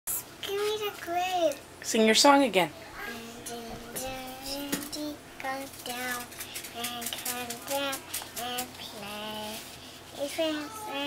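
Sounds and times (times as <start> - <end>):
girl singing: 3.0 - 11.0.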